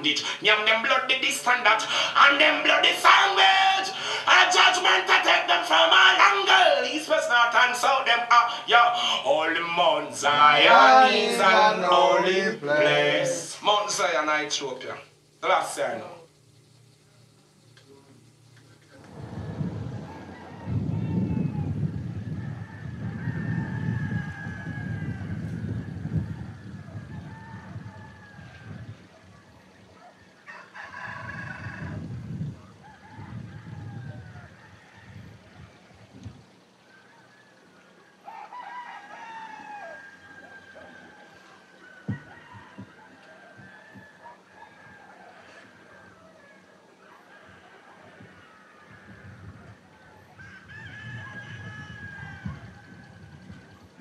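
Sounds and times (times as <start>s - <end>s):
roosters crowing: 0.0s - 17.0s, 19.0s - 54.0s
low rumble: 18.9s - 28.2s.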